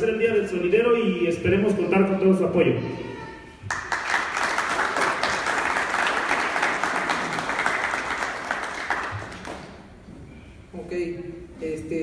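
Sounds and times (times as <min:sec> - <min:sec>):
audience applauding: 0:03.7 - 0:10.0.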